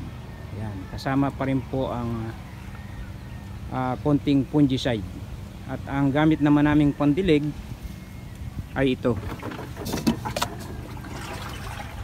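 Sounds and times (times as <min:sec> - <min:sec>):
low engine-like hum: 0:00.0 - 0:12.0.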